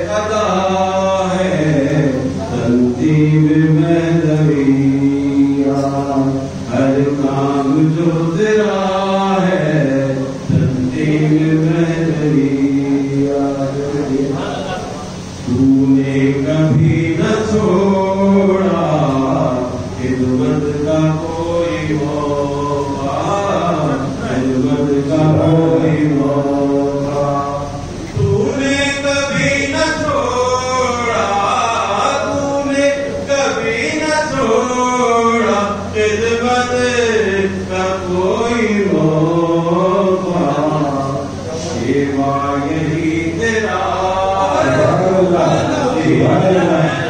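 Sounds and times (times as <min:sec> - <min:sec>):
person chanting melodically: 0:00.0 - 0:47.0
steady low hum: 0:00.0 - 0:47.0.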